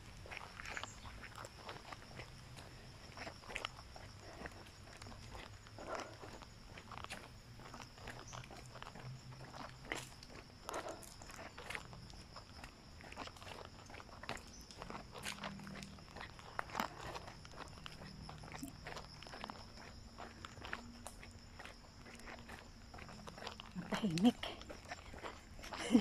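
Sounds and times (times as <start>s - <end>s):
footsteps on a trail: 0.0s - 26.0s.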